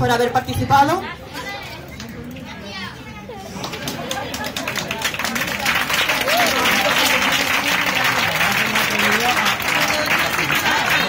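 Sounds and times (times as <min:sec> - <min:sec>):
audience applauding: 0:03.6 - 0:11.0.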